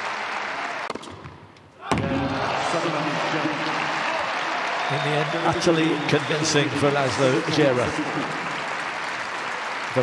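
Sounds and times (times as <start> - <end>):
crowd applauding: 0.0 - 0.9, 2.3 - 10.0.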